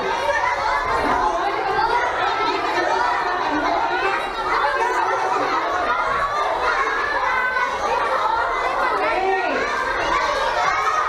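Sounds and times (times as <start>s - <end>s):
crowd of children chattering: 0.0s - 11.0s.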